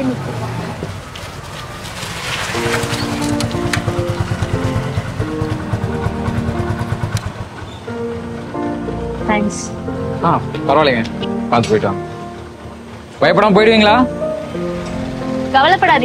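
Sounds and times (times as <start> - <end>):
sustained held notes: 2.6 - 16.0
low pulsing bed: 3.5 - 10.5.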